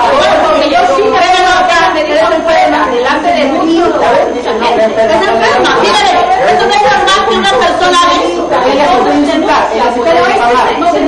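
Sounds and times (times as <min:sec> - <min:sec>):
people arguing loudly: 0:00.0 - 0:11.0.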